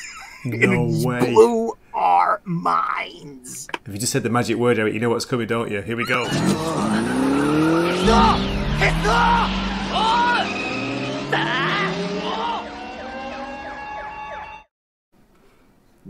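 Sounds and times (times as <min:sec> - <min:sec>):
motorcycle engines revving: 0:06.2 - 0:14.0.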